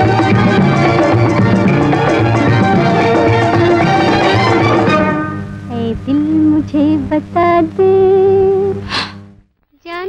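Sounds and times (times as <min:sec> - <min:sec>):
old film song with held vocal: 0:04.9 - 0:09.0
woman singing: 0:05.7 - 0:08.8.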